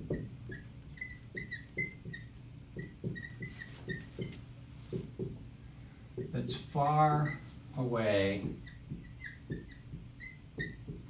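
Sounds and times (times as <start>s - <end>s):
marker squeaking on whiteboard: 0.0s - 5.5s, 6.2s - 11.0s.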